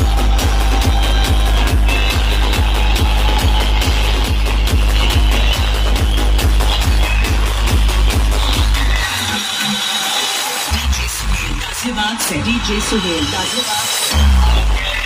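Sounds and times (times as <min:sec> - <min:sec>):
electronic dance music: 0:00.0 - 0:15.0.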